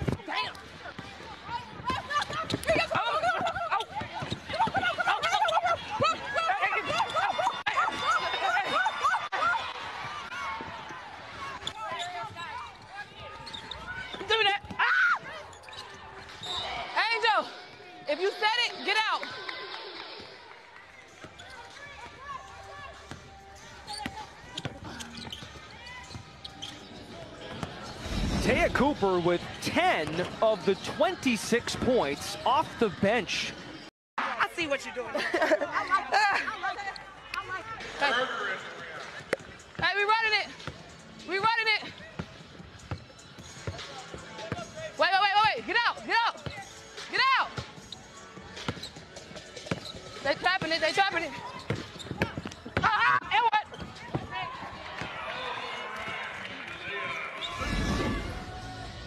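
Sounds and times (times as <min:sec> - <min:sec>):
sneakers squeaking on hardwood: 0:00.0 - 0:08.8, 0:11.4 - 0:16.9, 0:21.2 - 0:28.2, 0:42.2 - 0:44.7, 0:46.4 - 0:55.1
voices on court: 0:00.0 - 0:33.6.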